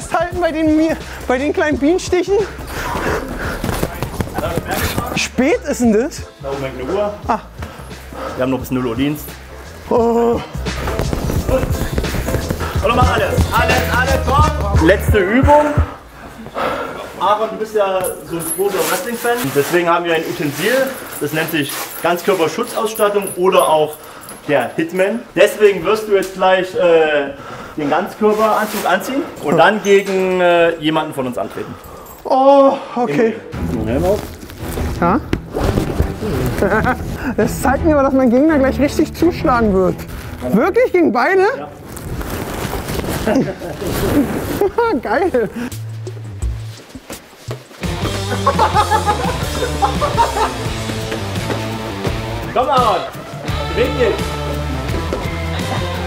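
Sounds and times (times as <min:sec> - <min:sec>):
background music with bass: 0:00.0 - 0:16.2, 0:33.5 - 0:41.0, 0:44.7 - 0:56.0
men talking: 0:00.0 - 0:34.3, 0:36.2 - 0:41.8, 0:48.1 - 0:54.7
gloves punching heavy bags: 0:02.6 - 0:05.2, 0:10.6 - 0:15.9.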